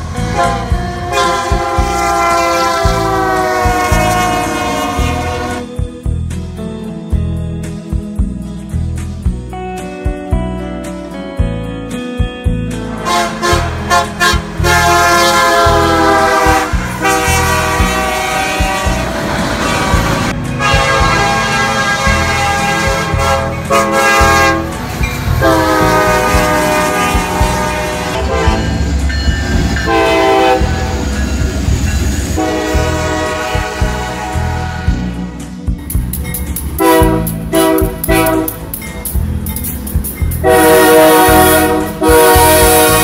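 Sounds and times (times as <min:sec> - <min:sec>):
locomotive air horns blowing: 0:00.0 - 0:05.7, 0:12.8 - 0:31.4, 0:32.2 - 0:35.3, 0:36.8 - 0:38.8, 0:40.4 - 0:43.0
passing trains rumbling: 0:00.0 - 0:06.4, 0:12.2 - 0:43.0.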